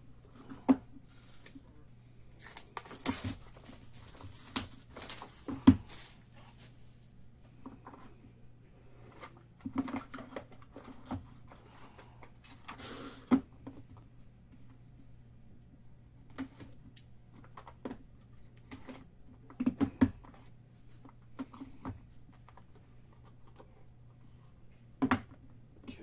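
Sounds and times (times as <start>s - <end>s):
packaging rustling and tearing: 2.3s - 6.8s.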